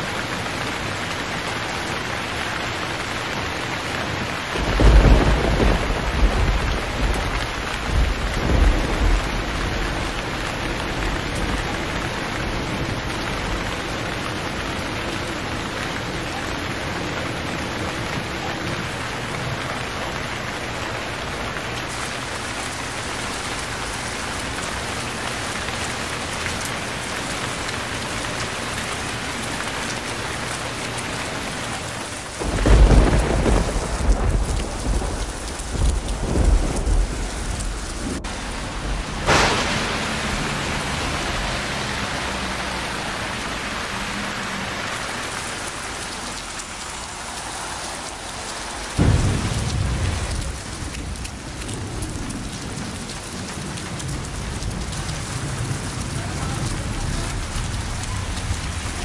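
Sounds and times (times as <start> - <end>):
heavy rain on a street: 0.0 - 59.0
thunder rumbling: 4.0 - 44.3, 48.1 - 59.0
sharp thunder crack: 4.6 - 13.6, 32.4 - 42.3, 49.0 - 55.8.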